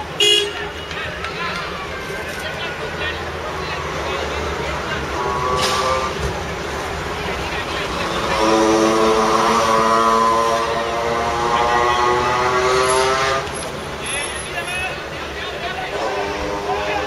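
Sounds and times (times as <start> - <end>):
vehicle engine passing: 3.5 - 14.0.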